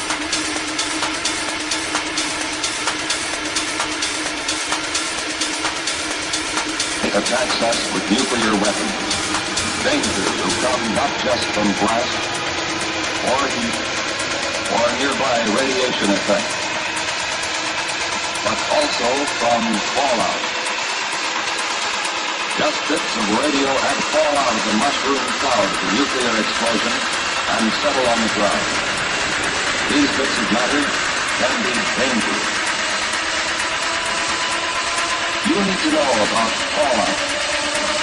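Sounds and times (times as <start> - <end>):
rumbling noise texture: 0.0 - 38.0
ticking techno rhythm: 0.0 - 38.0.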